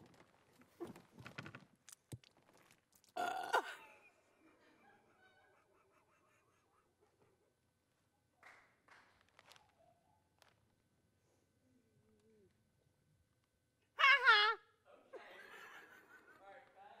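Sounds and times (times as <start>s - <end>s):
quiet breathy laughter: 3.6s - 8.6s, 15.1s - 16.9s
woman's loud vocal outburst: 14.0s - 14.6s.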